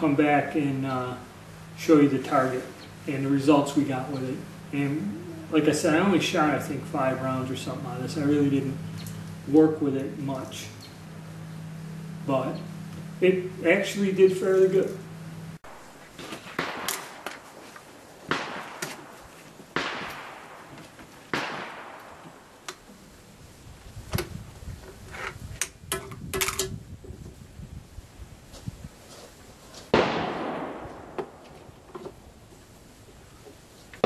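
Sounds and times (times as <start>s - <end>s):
rifle shots echoing: 16.4s - 17.4s, 18.2s - 22.7s, 29.9s - 31.4s.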